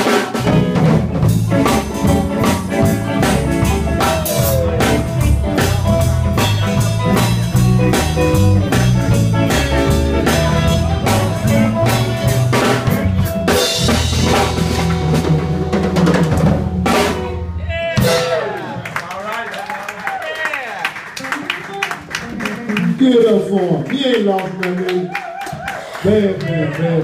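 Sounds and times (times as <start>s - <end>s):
electric guitars: 0.0s - 18.9s, 21.1s - 23.5s
drum kit: 0.0s - 19.0s.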